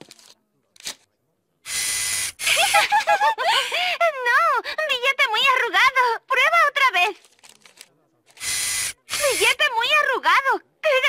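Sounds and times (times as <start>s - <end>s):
bill acceptor whir: 8.4s - 9.6s.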